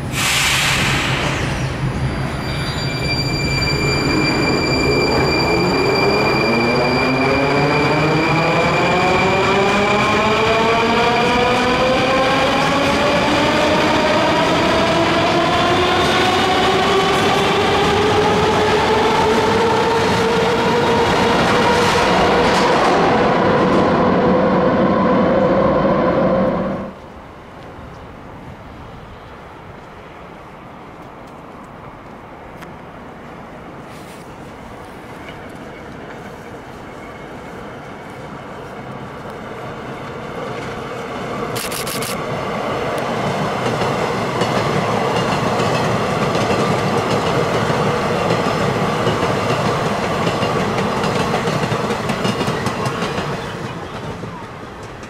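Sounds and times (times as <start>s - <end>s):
wind-like noise: 0.0s - 6.9s
train running noise: 0.0s - 55.0s.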